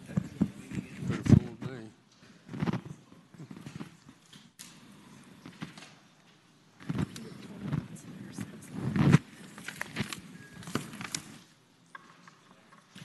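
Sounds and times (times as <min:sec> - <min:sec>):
murmuring voices: 0:06.8 - 0:11.0.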